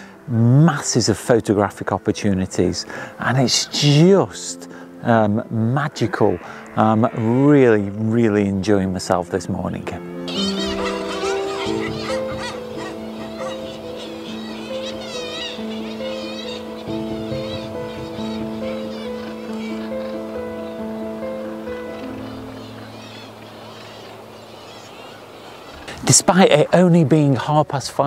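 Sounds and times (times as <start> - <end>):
slow sustained music chords: 0.0 - 24.4
seabird calls: 5.8 - 7.9, 10.1 - 27.4.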